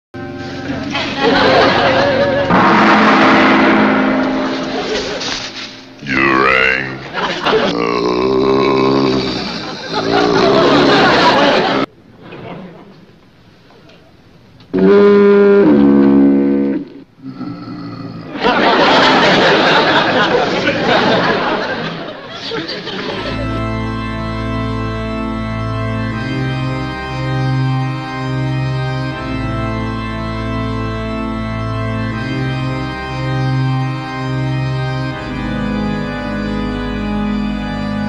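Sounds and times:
background music: 0:00.2 - 0:11.9, 0:22.6 - 0:38.0
held instrumental notes: 0:00.2 - 0:11.9, 0:23.0 - 0:38.0
person speaking: 0:06.0 - 0:11.0.

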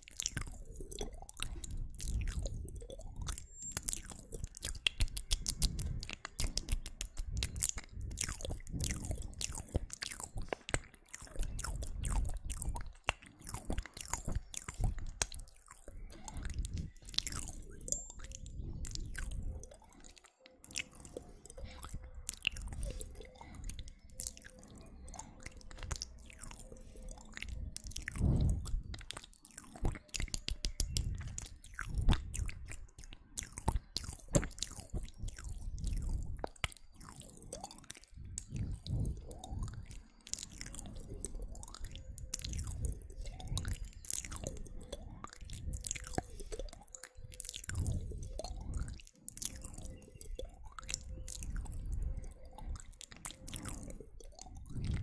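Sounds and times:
wet mouth clicks and smacks: 0:00.0 - 0:55.0
low puffs on microphone: 0:28.1 - 0:29.0.

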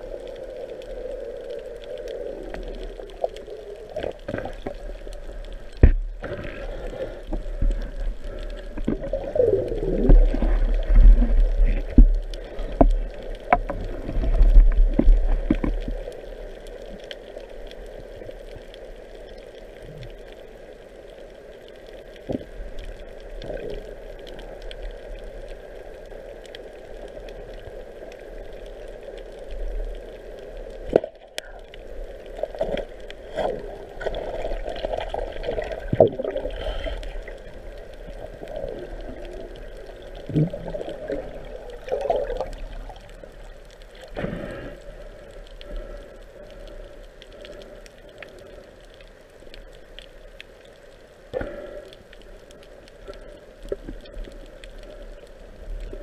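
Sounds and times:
underwater rushing and gurgling water: 0:00.0 - 0:56.0.

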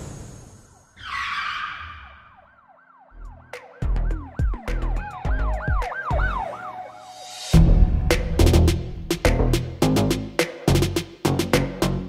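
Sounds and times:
siren-like wailing tone: 0:00.8 - 0:07.6
heavy bass beat: 0:03.6 - 0:06.3, 0:07.6 - 0:12.0.

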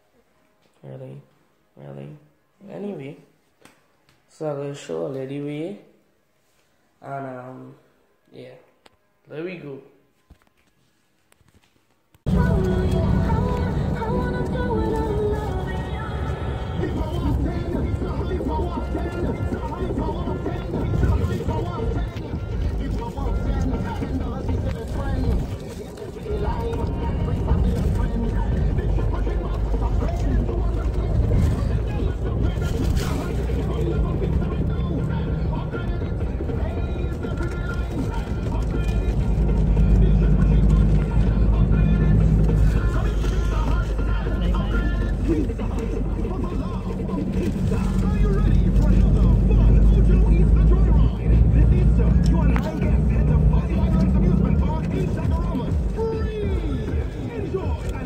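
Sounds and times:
car road and engine rumble: 0:12.3 - 0:58.0
indistinct voices talking: 0:12.3 - 0:58.0.

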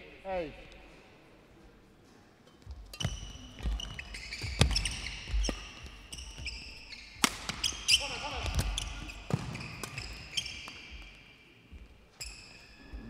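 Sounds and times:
shoes squeaking on court floor: 0:02.0 - 0:13.0
racket hitting shuttlecock: 0:02.9 - 0:11.2.

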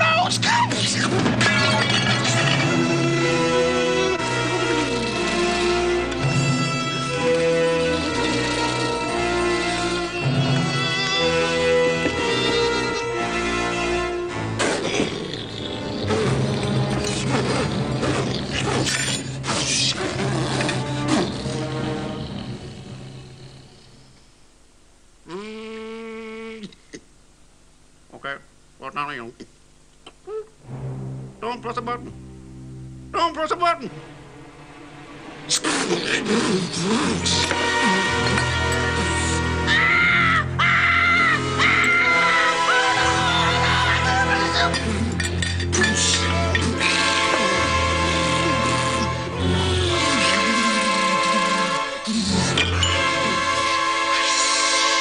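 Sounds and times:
background music: 0:00.0 - 0:23.6, 0:30.6 - 0:55.0
steady low hum: 0:13.9 - 0:39.6.

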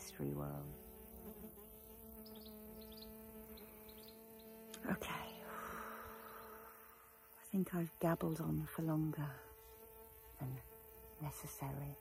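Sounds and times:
insect buzzing: 0:00.0 - 0:12.0.

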